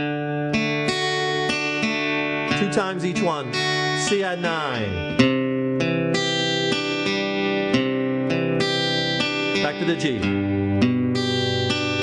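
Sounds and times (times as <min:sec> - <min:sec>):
acoustic guitar arpeggio: 0:00.0 - 0:12.0.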